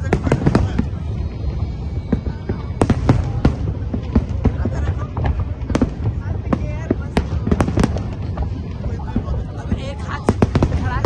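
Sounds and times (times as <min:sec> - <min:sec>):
continuous low rumble: 0:00.0 - 0:11.0
fireworks bursting with sharp bangs: 0:00.0 - 0:11.0.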